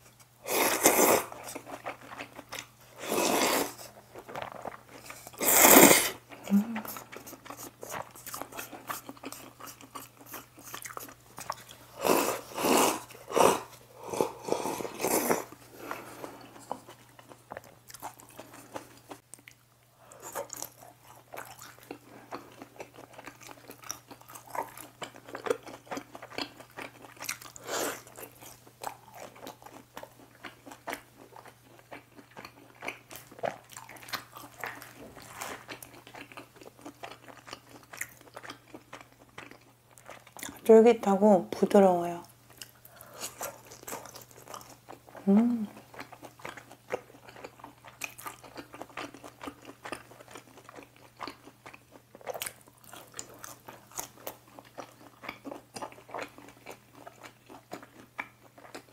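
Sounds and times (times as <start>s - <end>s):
chewing: 0.1s - 40.7s, 42.5s - 58.9s
slurping noodles: 0.5s - 1.4s, 3.0s - 3.9s, 5.4s - 6.2s, 12.0s - 16.4s.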